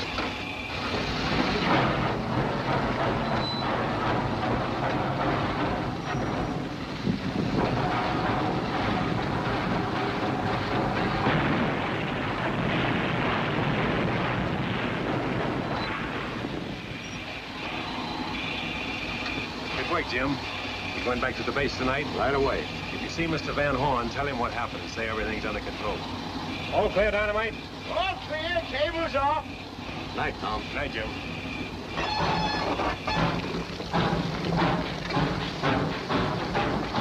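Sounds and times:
steam locomotive clatter and rumble: 0:00.0 - 0:37.0.

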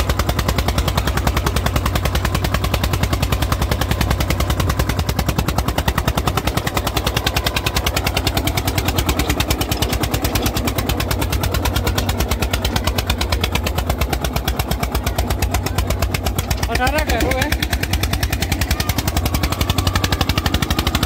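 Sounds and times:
tractor diesel engine under load: 0:00.0 - 0:21.0.

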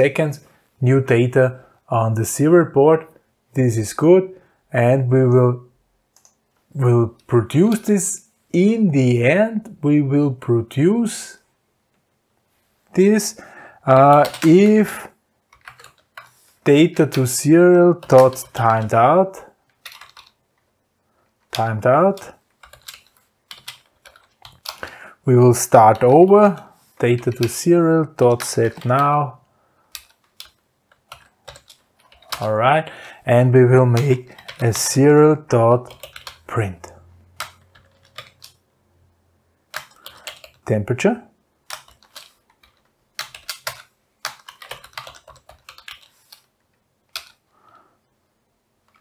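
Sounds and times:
computer keyboard typing: 0:13.8 - 0:20.4, 0:21.5 - 0:25.0, 0:25.6 - 0:29.3, 0:29.9 - 0:32.5, 0:33.9 - 0:35.0, 0:35.8 - 0:36.5, 0:37.3 - 0:38.6, 0:39.6 - 0:40.6, 0:41.6 - 0:47.5.

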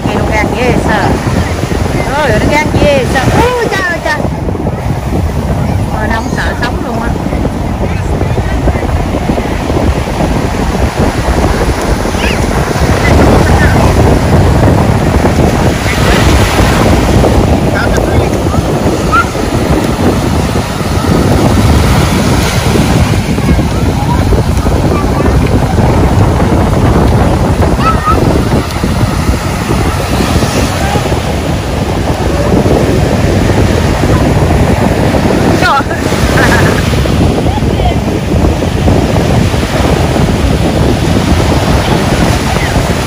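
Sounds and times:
ocean surf breaking: 0:00.0 - 0:43.0
wind buffeting microphone: 0:00.0 - 0:43.0.

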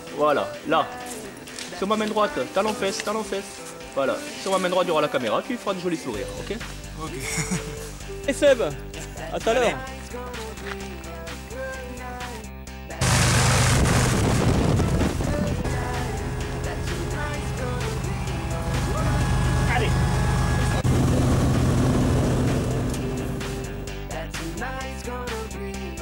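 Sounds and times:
music: 0:00.0 - 0:13.0, 0:13.7 - 0:26.0
light aircraft engine drone: 0:13.0 - 0:24.0.

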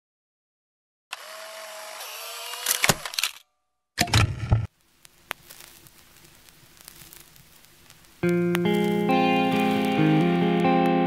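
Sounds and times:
record player whirring: 0:04.1 - 0:11.0
loud clicks and crackle: 0:04.7 - 0:11.0.

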